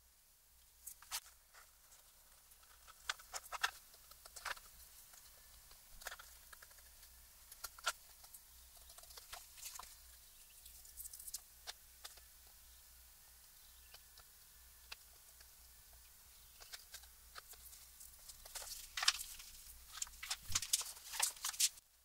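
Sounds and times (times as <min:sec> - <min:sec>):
hands rustling paper and cloth: 0:16.6 - 0:21.8.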